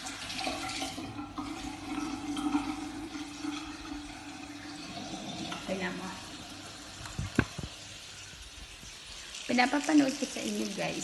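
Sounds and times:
tap water splashing into sink: 0.0s - 8.9s.

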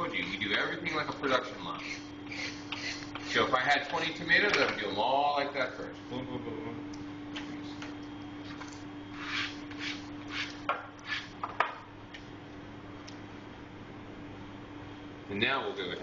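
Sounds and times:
kitchen equipment hum: 0.0s - 16.0s
brushing swishes on cutting board: 9.1s - 11.3s.

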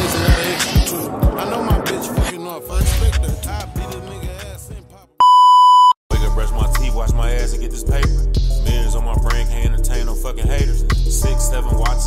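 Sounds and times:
hip hop track with heavy bass: 0.0s - 5.2s, 6.1s - 12.0s
loud test-tone beep: 5.2s - 6.0s.

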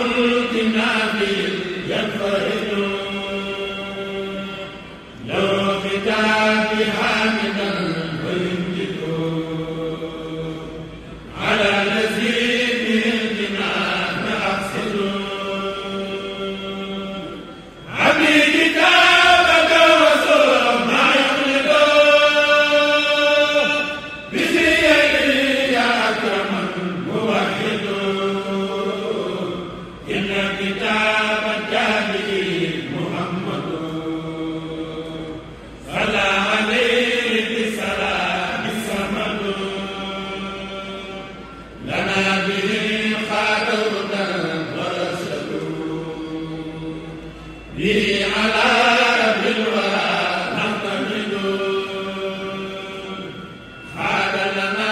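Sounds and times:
men chanting: 0.0s - 54.9s.

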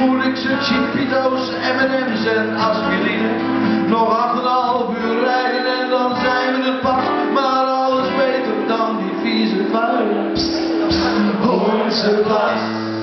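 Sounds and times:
acoustic guitar: 0.0s - 13.0s
man singing: 0.0s - 13.0s.

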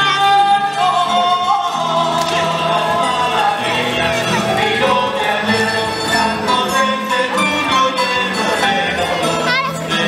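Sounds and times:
guitars and plucked strings: 0.0s - 10.0s
voices singing together: 0.0s - 10.0s.

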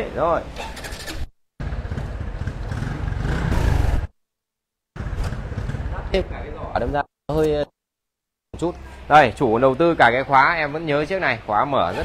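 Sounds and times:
motorcycle engine running: 1.6s - 4.1s, 5.0s - 6.2s.

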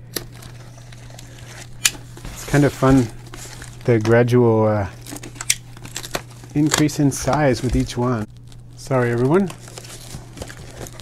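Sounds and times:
tape and cardboard crinkling: 0.1s - 11.0s.

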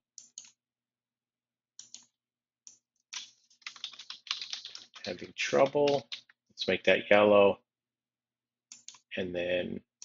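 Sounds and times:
computer keyboard clicks: 3.2s - 6.2s.

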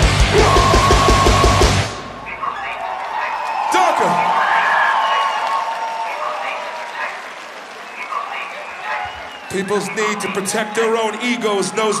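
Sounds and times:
hardcore band playing live: 0.0s - 2.1s
crowd noise: 0.0s - 12.0s
people shouting: 0.2s - 7.3s.

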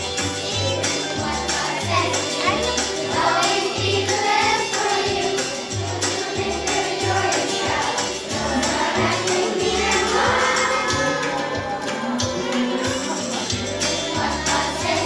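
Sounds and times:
children's choir singing: 0.0s - 15.0s
instrumental accompaniment: 0.0s - 15.0s
steady percussion beat: 0.0s - 15.0s.

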